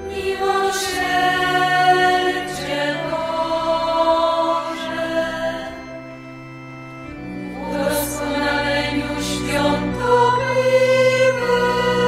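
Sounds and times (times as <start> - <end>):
choir singing slow chant: 0.0 - 12.0.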